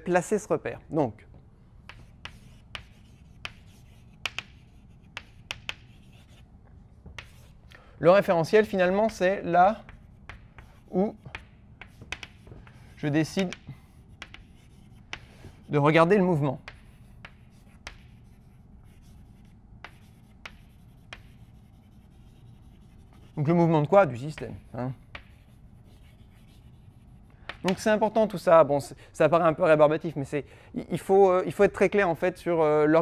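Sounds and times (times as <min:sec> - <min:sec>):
chalk tapping on blackboard: 0:01.8 - 0:07.8, 0:08.4 - 0:28.1.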